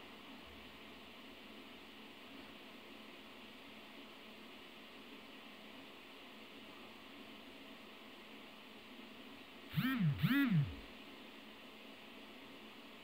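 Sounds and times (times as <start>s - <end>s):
old recording hiss: 0.0s - 13.0s
rising and falling voiced calls: 9.8s - 10.8s.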